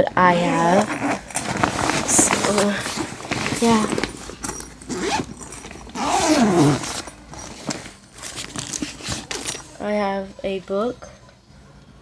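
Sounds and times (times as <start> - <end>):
bag rustling: 0.2 - 9.9
backpack zipper pulled open: 0.4 - 9.7.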